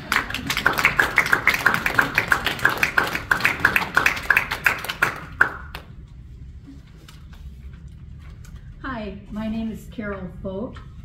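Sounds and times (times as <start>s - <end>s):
small audience applauding: 0.0s - 5.9s.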